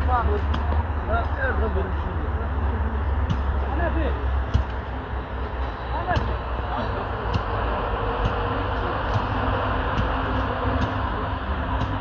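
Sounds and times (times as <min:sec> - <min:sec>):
distant voices: 0:00.0 - 0:12.0
low outdoor rumble: 0:00.0 - 0:12.0.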